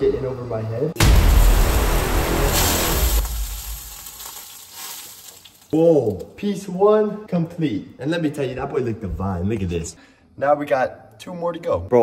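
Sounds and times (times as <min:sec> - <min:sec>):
steak sizzling in a frying pan: 0:02.1 - 0:05.8.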